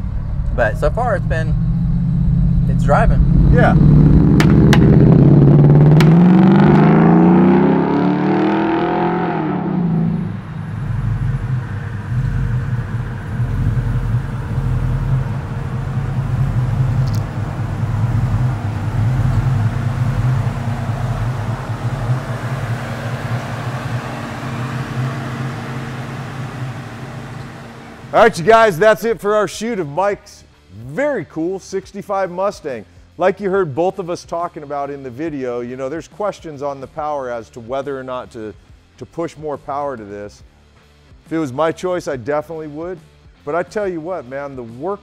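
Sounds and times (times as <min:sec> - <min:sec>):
car engine accelerating: 0:00.0 - 0:29.5.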